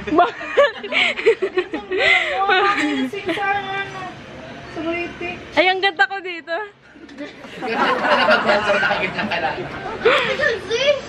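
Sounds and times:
girl laughing: 0.0 - 3.6, 9.8 - 10.8.

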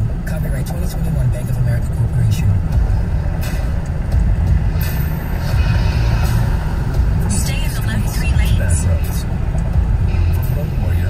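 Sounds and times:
car radio voices and music: 0.0 - 11.0
car road and engine rumble: 0.0 - 11.0.

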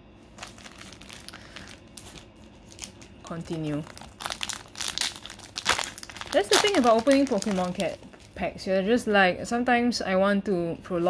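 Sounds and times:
foil wrappers crinkling: 0.3 - 8.5.

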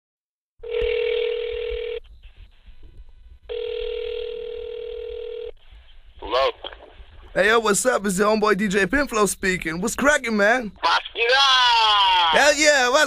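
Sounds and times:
telephone ringing tone beeps: 0.6 - 2.0, 3.5 - 5.5
faint line hiss: 2.0 - 3.5, 5.6 - 11.2.

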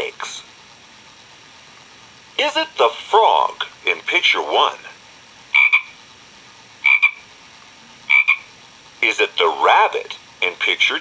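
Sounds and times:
frog croaking: 5.5 - 6.0, 6.8 - 7.3, 8.1 - 8.5.

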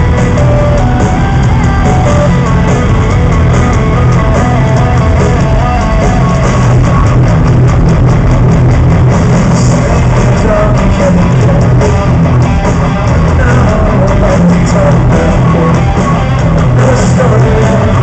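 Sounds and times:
bass guitar: 0.0 - 18.0
distorted electric guitars: 0.0 - 18.0
drums: 0.0 - 18.0
guitar melody: 0.0 - 18.0
heavy metal band playing live: 0.0 - 18.0.

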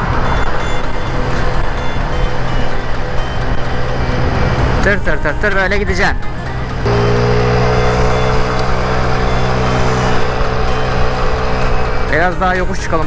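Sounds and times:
road noise: 0.0 - 13.0
wind: 0.0 - 13.0
scooter engine running: 6.5 - 12.8.

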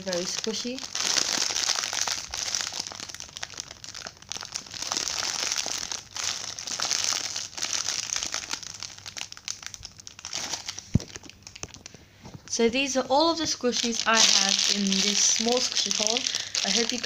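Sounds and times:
plastic bag crinkling: 0.0 - 17.0.

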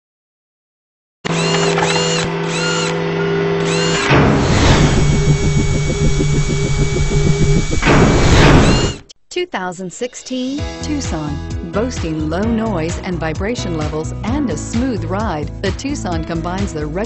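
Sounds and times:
drill-like whir: 1.3 - 9.1
fast pulsing whir: 1.3 - 9.1
whoosh: 4.1 - 9.0.

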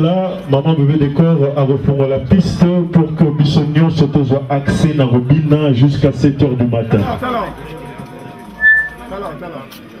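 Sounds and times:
short high whistle: 8.6 - 9.0.

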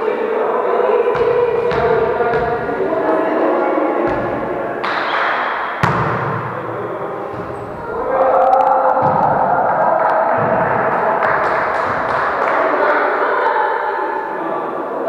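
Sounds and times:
players' voices: 0.0 - 15.0
volleyball smacks: 4.1 - 6.6.

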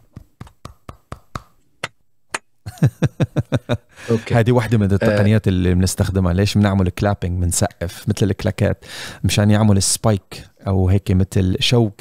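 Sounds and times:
hand claps: 0.0 - 2.5.

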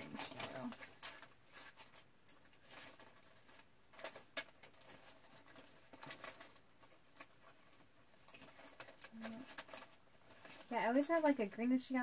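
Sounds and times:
clicks and rustles of handled supplies: 0.0 - 12.0.

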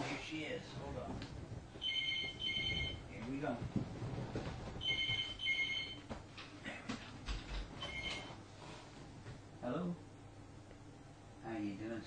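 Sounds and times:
telephone ringing: 1.8 - 3.1, 4.8 - 6.1, 7.8 - 8.3.

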